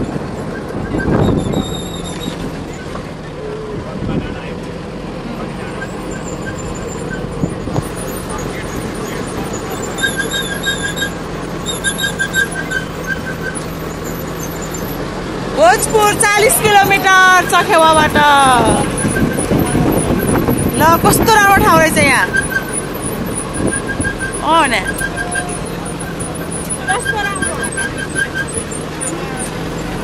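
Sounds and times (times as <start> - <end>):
vehicle engine running: 0.0 - 30.0.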